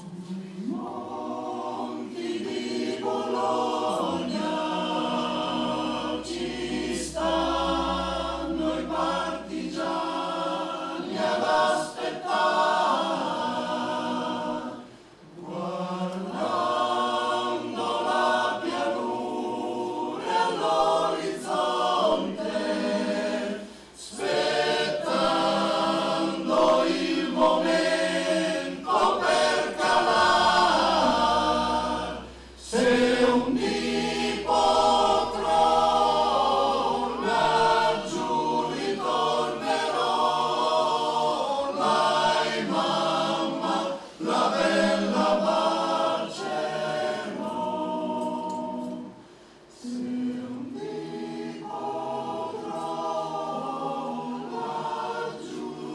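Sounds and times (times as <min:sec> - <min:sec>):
male choir singing a cappella: 0:00.0 - 0:55.9.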